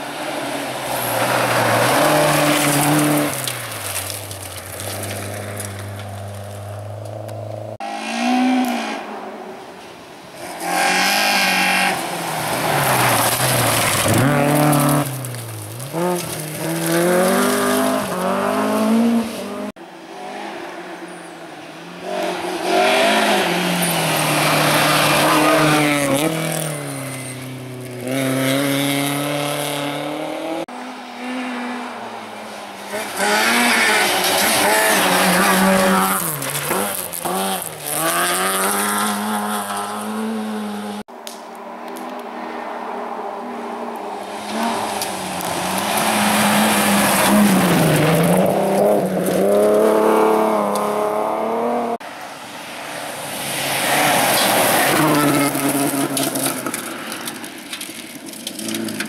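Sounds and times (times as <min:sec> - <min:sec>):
rally cars driving past on gravel: 0:00.1 - 0:09.3, 0:10.4 - 0:21.4, 0:22.0 - 0:59.0
engines revving through gear changes: 0:44.5 - 0:52.0.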